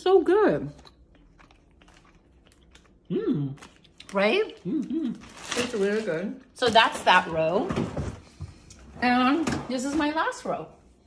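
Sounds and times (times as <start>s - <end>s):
chewing with mouth clicks: 0.7s - 5.3s.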